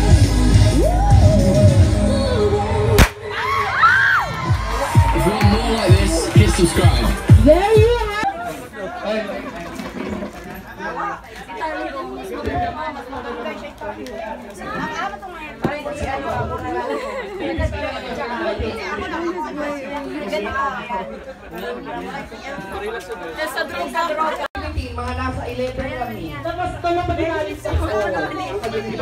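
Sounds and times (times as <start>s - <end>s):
overlapping group chatter: 0.0s - 29.0s.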